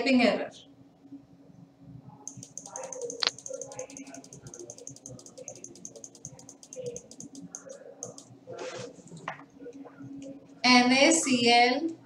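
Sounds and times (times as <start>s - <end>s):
rapid mouse clicking: 2.3s - 8.4s.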